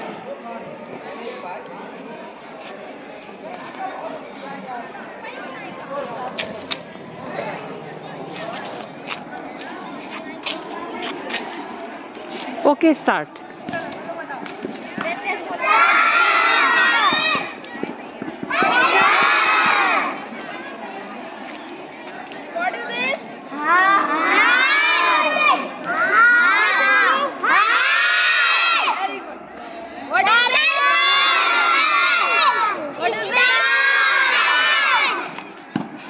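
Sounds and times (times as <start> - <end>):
children shouting in chorus: 15.6 - 17.5, 18.5 - 20.2, 23.5 - 29.0, 30.2 - 35.4.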